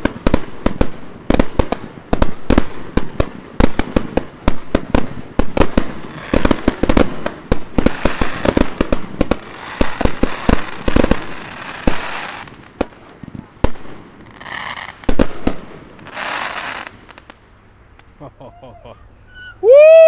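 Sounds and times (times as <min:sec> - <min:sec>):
crackling fireworks stars: 0:00.0 - 0:18.3.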